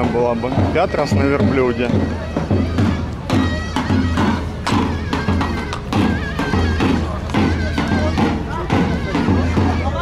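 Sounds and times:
reedy wind instrument melody: 0.0s - 10.0s
steady drum beat: 0.0s - 10.0s.

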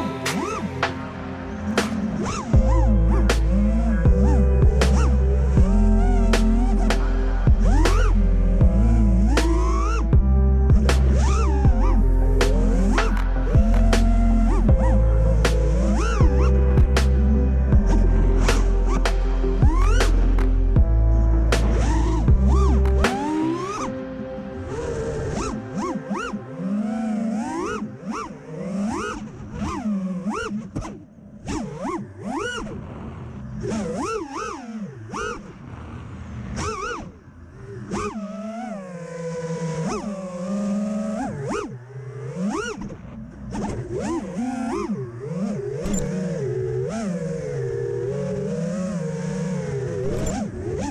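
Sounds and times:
quadcopter propellers whining: 0.0s - 6.9s.

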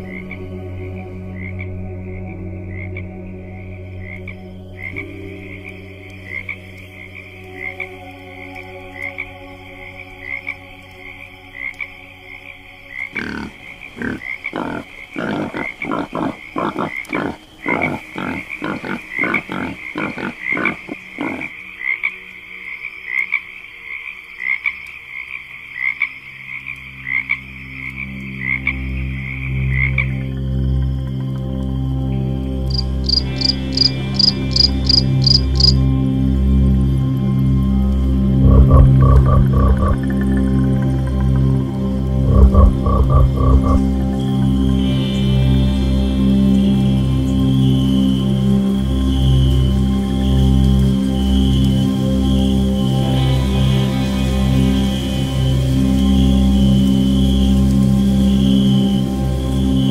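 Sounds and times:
ambient music drone: 0.0s - 59.9s
crickets chirping: 0.0s - 59.9s
frogs croaking: 0.0s - 59.9s.

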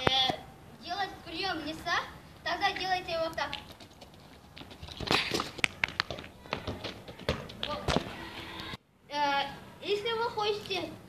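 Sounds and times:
footsteps scuffing on asphalt: 3.5s - 8.2s
football being kicked: 4.9s - 8.2s.

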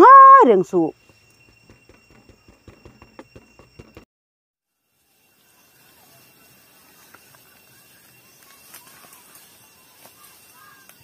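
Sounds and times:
high insect drone: 0.0s - 4.0s, 4.7s - 11.0s.

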